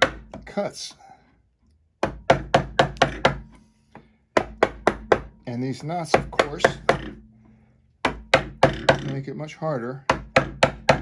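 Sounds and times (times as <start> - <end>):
wooden mallet striking chisel: 0.0 - 0.5, 2.0 - 9.3, 10.0 - 11.0.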